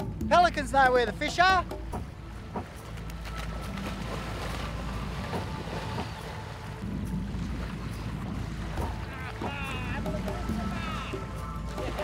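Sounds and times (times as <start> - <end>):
faint water splashes: 1.0 - 12.0.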